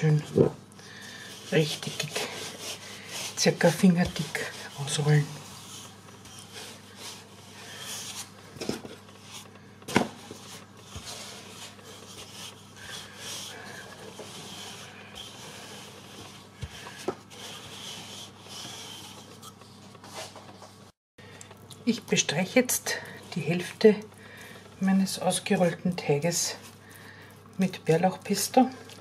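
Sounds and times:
rolling pin rubbing on dough: 0:00.0 - 0:20.4, 0:22.5 - 0:29.0.

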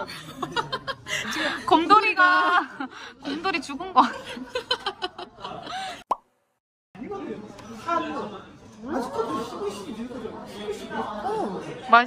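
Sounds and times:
laughter: 0:00.0 - 0:01.7, 0:04.0 - 0:06.0
people chattering: 0:00.0 - 0:06.0, 0:07.0 - 0:12.0.

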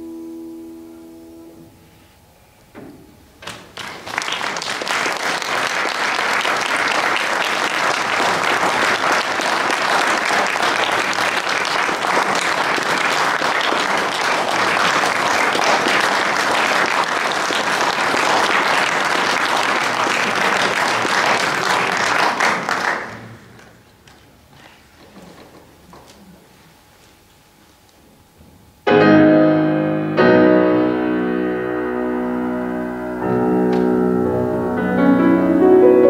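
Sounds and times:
audience applause: 0:03.4 - 0:24.2.

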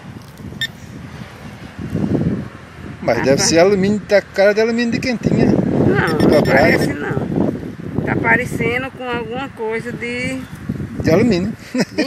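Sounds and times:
wind rumble: 0:00.0 - 0:11.8.

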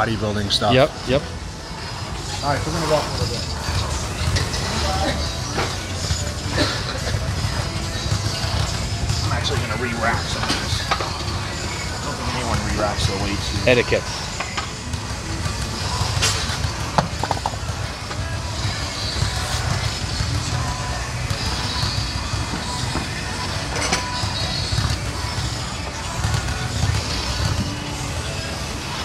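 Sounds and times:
background music: 0:00.0 - 0:29.0
voices: 0:00.0 - 0:29.0.

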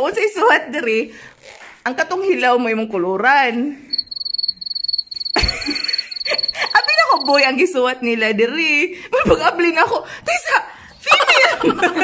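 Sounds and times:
cricket chirping: 0:03.9 - 0:07.6.

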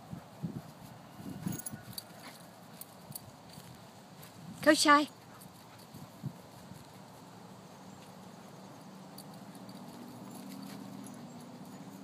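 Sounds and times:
dog paws thudding on grass: 0:00.0 - 0:12.0.

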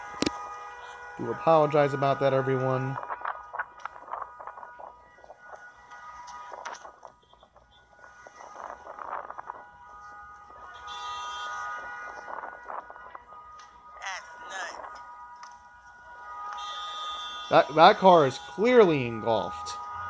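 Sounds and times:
background music sustained notes: 0:00.0 - 0:20.0.

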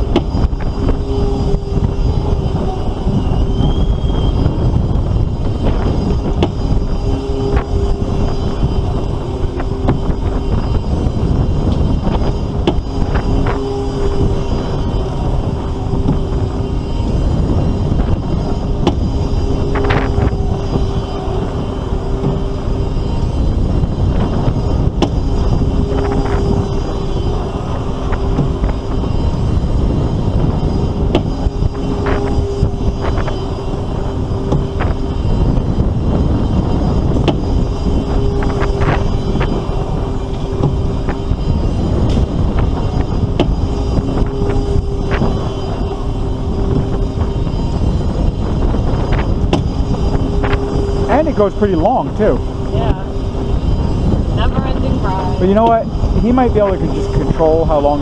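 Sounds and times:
ride two-note hum: 0:00.0 - 0:58.0
wind rushing over microphone: 0:00.0 - 0:58.0.

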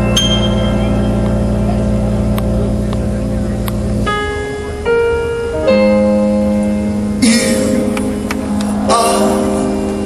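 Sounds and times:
band holding sustained chord: 0:00.0 - 0:10.0.

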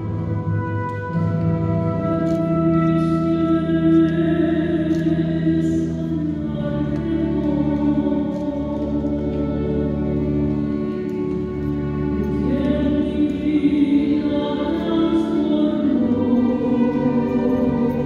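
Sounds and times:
sustained organ accompaniment: 0:00.0 - 0:18.0
choir singing a hymn: 0:12.4 - 0:18.0.

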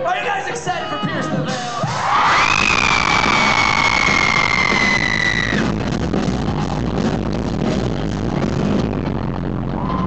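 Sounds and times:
live rock band playing: 0:01.1 - 0:09.4.

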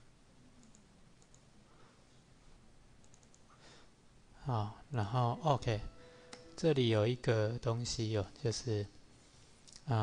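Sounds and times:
computer mouse and keyboard clicks: 0:00.6 - 0:01.5, 0:03.0 - 0:03.4.

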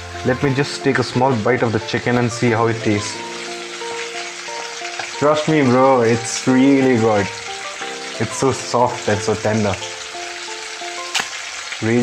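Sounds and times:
food deep-frying in hot oil: 0:00.0 - 0:12.0
sharp click: 0:11.1 - 0:11.4.

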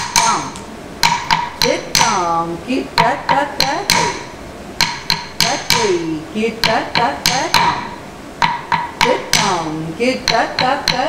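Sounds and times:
woman chanting rhythm syllables: 0:00.0 - 0:00.7, 0:01.6 - 0:04.4, 0:05.4 - 0:08.0, 0:08.8 - 0:11.0
stick striking wooden block: 0:00.0 - 0:02.2, 0:03.0 - 0:11.0.

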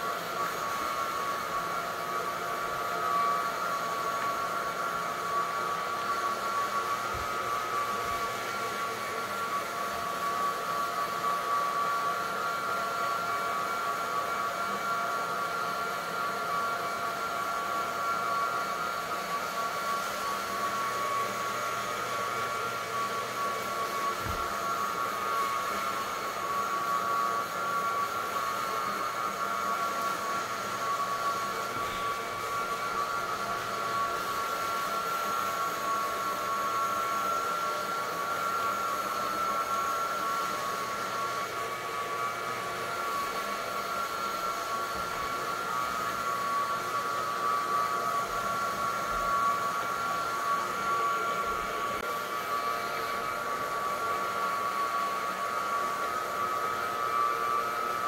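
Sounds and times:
floor buffer whining: 0:00.0 - 0:58.0.

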